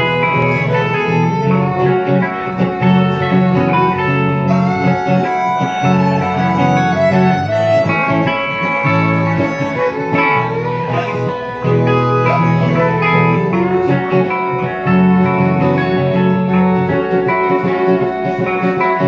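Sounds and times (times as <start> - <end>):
electric guitars: 0.0 - 19.0
fiddle: 0.0 - 19.0
live band playing: 0.0 - 19.0.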